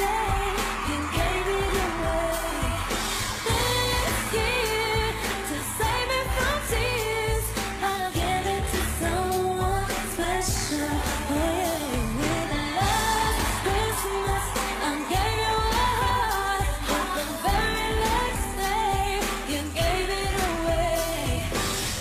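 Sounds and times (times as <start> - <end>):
pop song with singer and band: 0.0 - 22.0.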